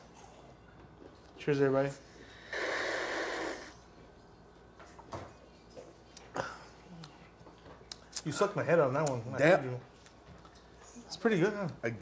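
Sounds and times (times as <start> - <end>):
person slurping a sip: 2.3 - 3.8.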